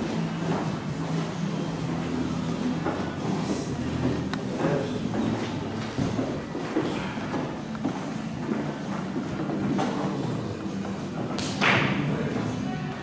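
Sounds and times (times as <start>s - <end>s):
faint voices: 0.0s - 13.0s
room hum: 0.0s - 13.0s.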